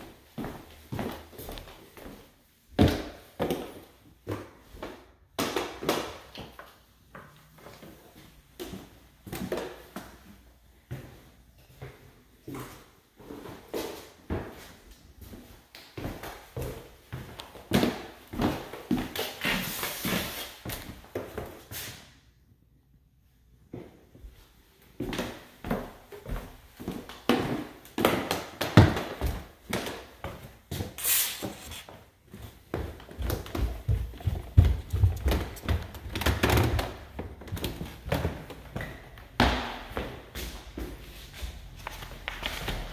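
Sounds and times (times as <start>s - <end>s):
footsteps on wooden floor: 28.8s - 42.9s.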